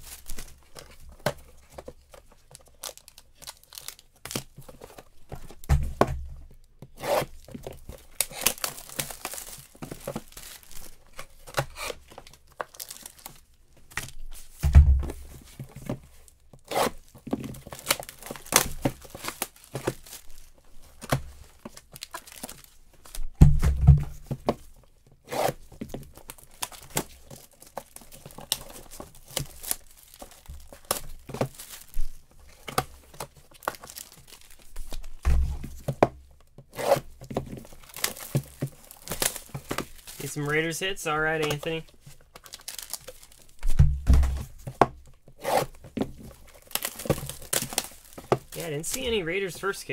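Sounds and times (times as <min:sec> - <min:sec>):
plastic shrink-wrap crackling: 0:00.0 - 0:04.8, 0:07.3 - 0:14.6, 0:16.9 - 0:23.2, 0:25.8 - 0:35.2, 0:37.0 - 0:43.8, 0:44.5 - 0:49.9
dull thumps: 0:14.6 - 0:16.0, 0:23.3 - 0:24.6, 0:43.6 - 0:45.0.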